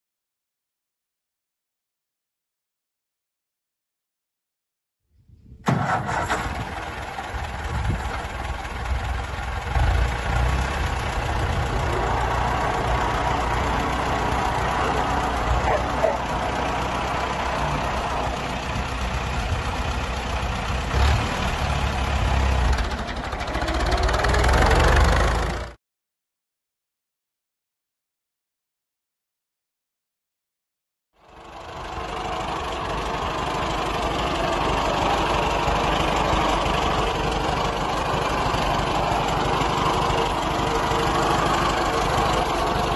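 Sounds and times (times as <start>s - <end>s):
tractor engine running: 5.6s - 25.8s, 31.2s - 42.9s.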